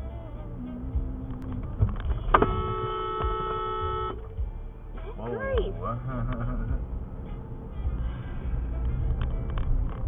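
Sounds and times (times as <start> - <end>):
engine and road rumble in car: 0.0 - 10.0
car horn blast: 2.1 - 4.3.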